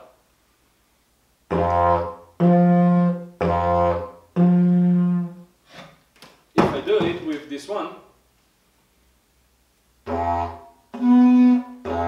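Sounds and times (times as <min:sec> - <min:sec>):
didgeridoo drone and toot: 0:01.5 - 0:05.3, 0:10.0 - 0:12.0.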